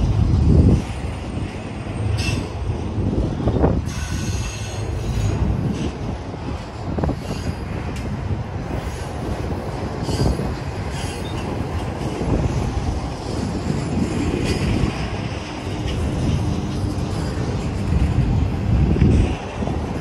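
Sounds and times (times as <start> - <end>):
train wheels rumbling on rail: 0.0 - 20.0.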